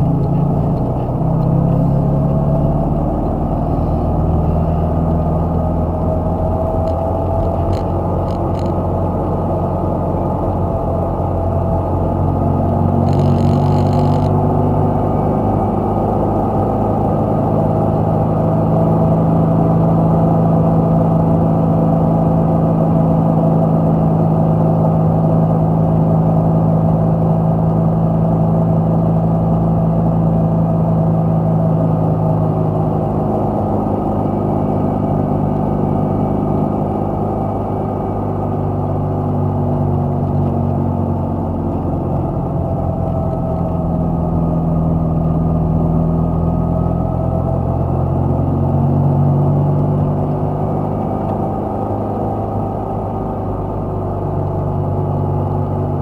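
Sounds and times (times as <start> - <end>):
car engine running: 0.0 - 56.0
road noise: 0.0 - 56.0.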